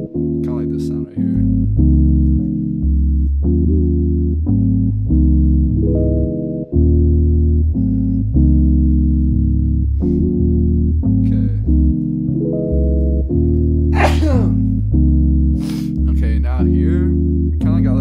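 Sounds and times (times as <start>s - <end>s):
deep bass line: 0.0s - 18.0s
electric piano chords: 0.0s - 18.0s
lo-fi hip-hop beat: 0.0s - 18.0s.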